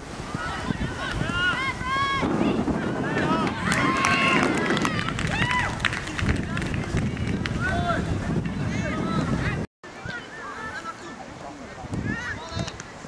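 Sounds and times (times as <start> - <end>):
wind rumbling on microphone: 0.0 - 10.2, 11.3 - 13.0
voices shouting and calling: 0.2 - 13.0.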